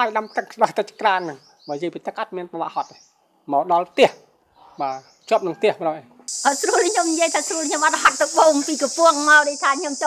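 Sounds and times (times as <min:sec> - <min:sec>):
high-pitched insect drone: 0:06.3 - 0:10.0
woman talking: 0:06.4 - 0:10.0.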